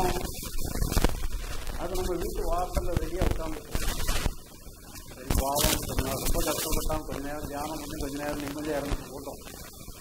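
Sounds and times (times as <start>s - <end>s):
man talking into a microphone: 1.8s - 3.8s, 5.2s - 9.4s.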